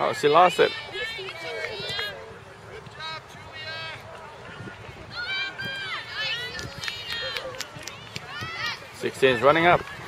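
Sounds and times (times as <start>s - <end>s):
girls shouting: 5.1s - 7.4s.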